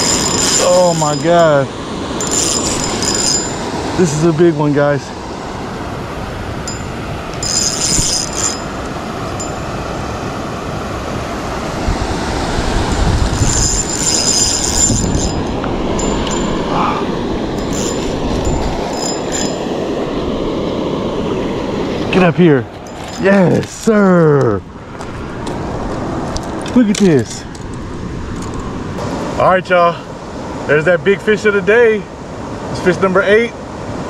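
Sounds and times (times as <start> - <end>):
fishing reel whirring: 0.0 - 1.4, 2.2 - 3.6, 6.7 - 9.6, 12.9 - 16.7, 17.6 - 19.7.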